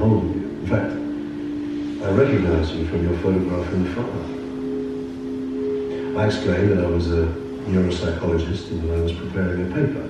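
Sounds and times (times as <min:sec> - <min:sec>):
low held soundtrack tones: 0:00.0 - 0:10.0.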